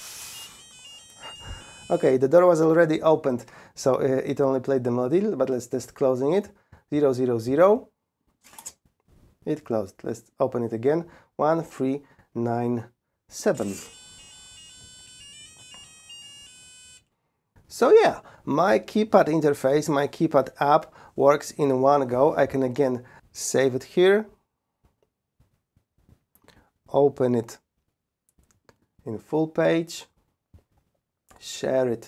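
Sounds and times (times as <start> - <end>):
melody of electronic beeps: 0.3 - 2.1, 13.7 - 17.0.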